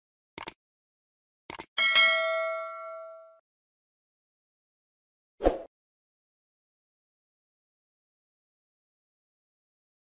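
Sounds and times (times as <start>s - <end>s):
notification bell ding: 1.8s - 3.4s.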